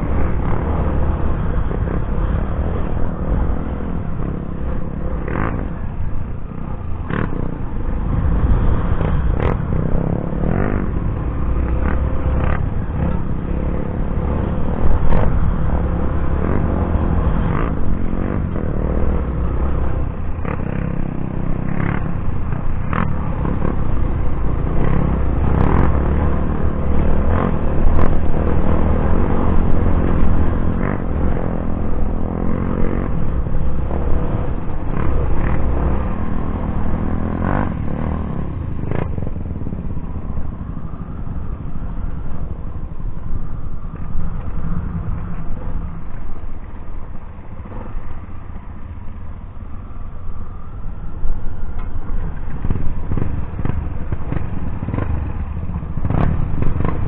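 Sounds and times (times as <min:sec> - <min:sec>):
motorcycle engine and wind rumble: 0:00.0 - 0:57.0.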